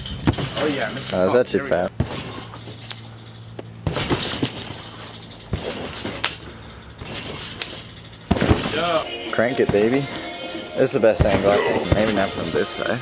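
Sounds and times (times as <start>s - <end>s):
trampoline thumps: 0.0s - 1.0s, 1.8s - 10.4s, 11.0s - 12.6s
steady low hum: 0.0s - 13.0s.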